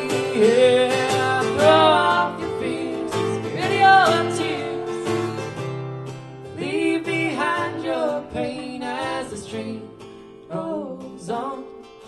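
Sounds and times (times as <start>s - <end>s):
man and woman singing: 0.0s - 5.4s, 6.5s - 11.9s.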